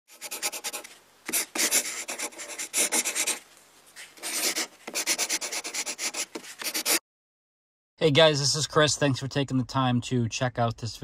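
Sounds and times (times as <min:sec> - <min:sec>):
chalk scratching on rough surface: 0:00.1 - 0:03.4, 0:04.0 - 0:07.0.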